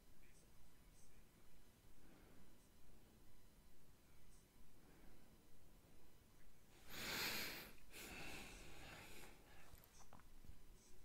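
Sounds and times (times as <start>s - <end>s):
person breathing through nose: 6.8s - 9.8s.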